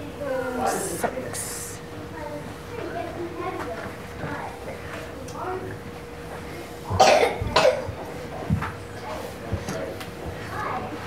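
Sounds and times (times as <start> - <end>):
person coughing: 7.0 - 7.9.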